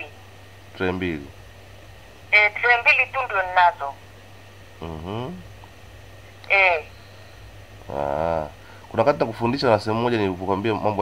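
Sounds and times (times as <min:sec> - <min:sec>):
person saying ehh: 0:04.8 - 0:05.4.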